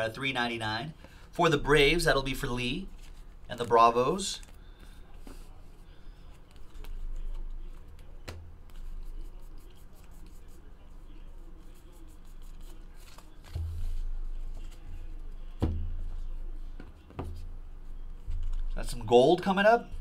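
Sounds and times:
cards rustling and tapping: 2.4s - 9.1s, 12.3s - 16.2s, 18.2s - 18.7s.

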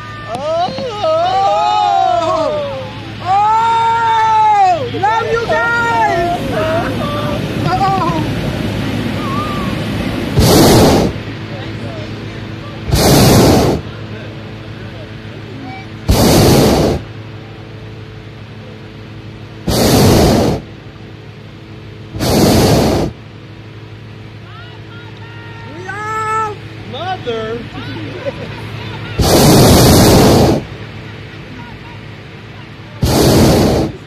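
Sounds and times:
propane burner blasts: 0.0s - 34.0s.

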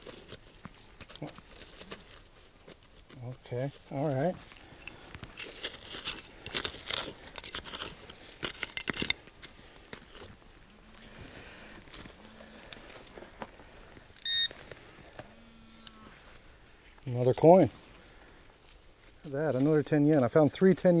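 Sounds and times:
hand digger scraping soil: 0.0s - 10.4s
metal detector low hums: 10.7s - 13.2s, 14.2s - 16.4s
metal detector high beep: 14.2s - 14.6s, 15.3s - 16.0s.

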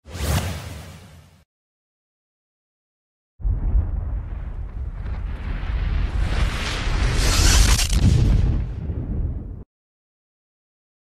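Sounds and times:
low rumble: 3.4s - 7.2s.

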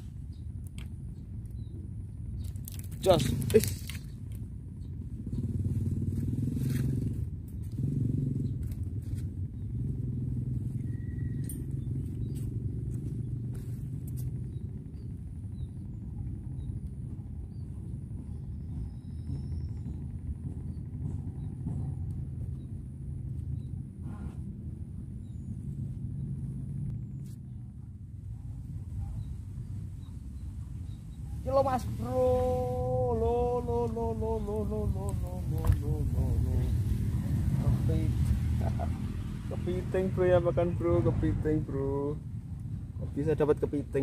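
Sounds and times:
engine humming: 0.0s - 44.0s.

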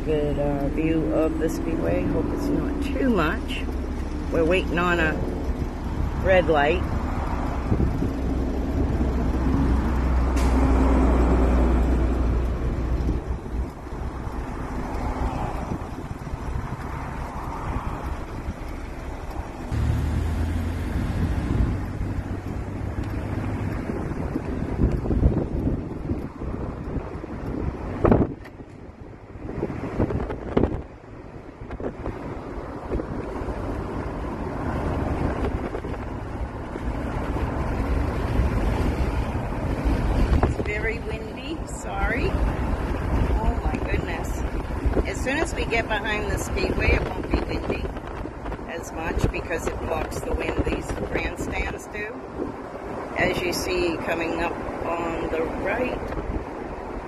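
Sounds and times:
road traffic noise: 0.0s - 57.0s
wind buffeting microphone: 0.0s - 57.0s.

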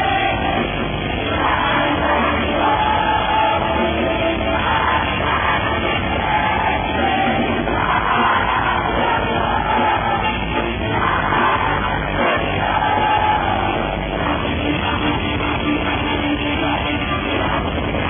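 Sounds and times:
bass guitar: 0.0s - 18.0s
distorted electric guitars: 0.0s - 18.0s
drums: 0.0s - 18.0s.

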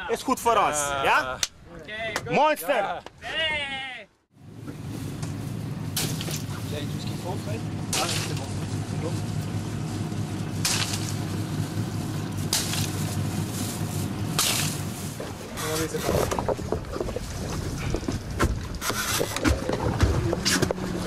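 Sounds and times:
low engine hum: 4.3s - 21.0s.

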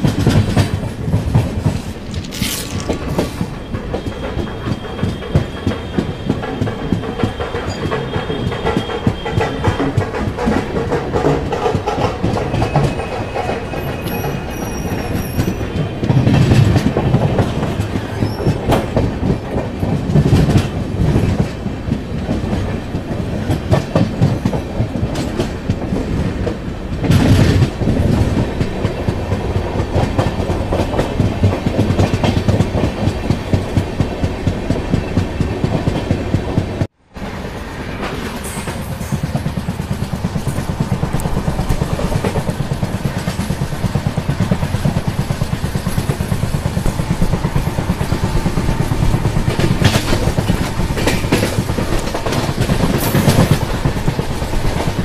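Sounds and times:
clickety-clack over rail joints: 0.0s - 55.0s
train clatter: 0.0s - 55.0s
train wheels rumbling on rails: 0.0s - 55.0s.

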